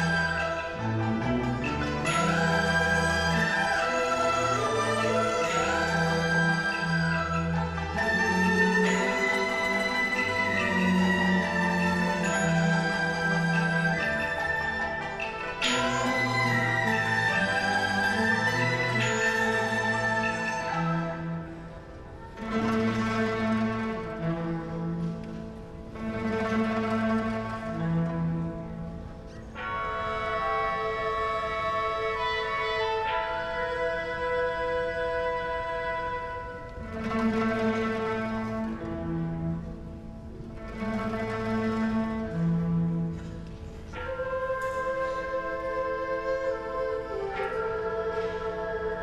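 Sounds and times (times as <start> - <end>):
traditional orchestra playing: 0.0 - 49.0.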